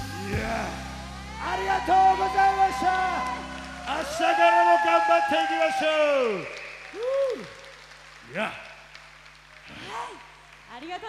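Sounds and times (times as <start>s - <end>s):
audience applause: 1.4s - 11.0s.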